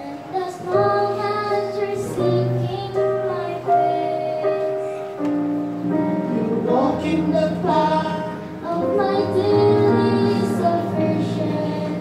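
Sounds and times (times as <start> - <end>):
girl singing into a microphone: 0.0 - 5.3, 8.5 - 12.0
instrumental accompaniment: 0.0 - 12.0.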